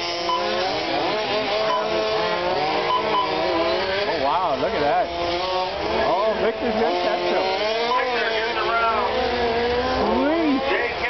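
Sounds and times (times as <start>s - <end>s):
electric toy car motors whining: 0.0s - 11.0s.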